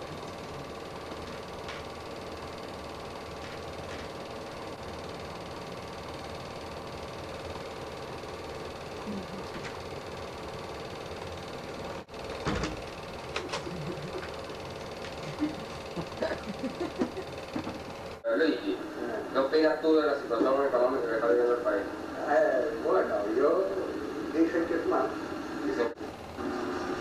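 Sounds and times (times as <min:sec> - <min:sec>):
film projector whirring: 0:00.0 - 0:27.0.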